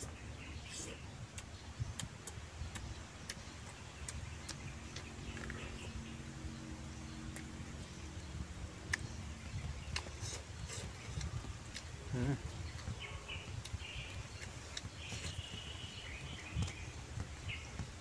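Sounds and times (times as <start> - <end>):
faint low rumble: 0.0 - 18.0
person chewing with lip smacks: 0.7 - 5.9, 9.8 - 15.5.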